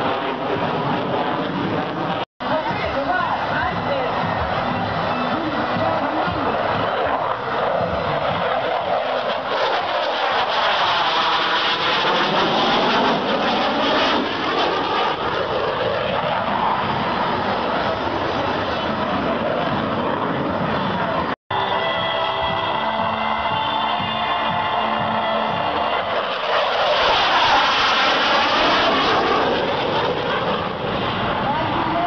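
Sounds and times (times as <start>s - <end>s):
jet fighter flying past: 0.0s - 32.0s.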